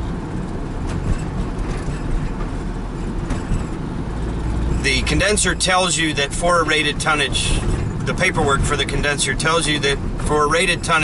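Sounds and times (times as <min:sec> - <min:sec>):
engine and road noise in cabin: 0:00.0 - 0:11.0.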